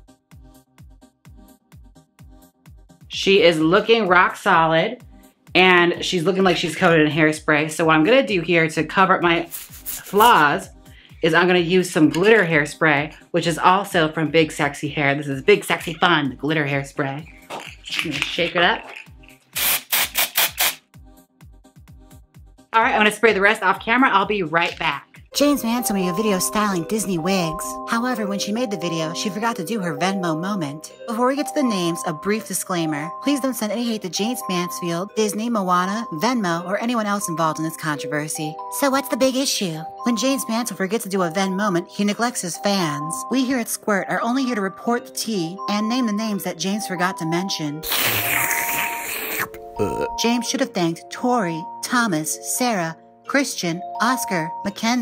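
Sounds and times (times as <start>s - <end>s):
background music: 0.0s - 20.0s, 20.6s - 55.0s
noisy slurp from a drink can: 9.5s - 10.2s, 18.8s - 20.8s, 47.8s - 50.1s
aerosol can rattling: 9.5s - 10.4s, 17.4s - 20.8s.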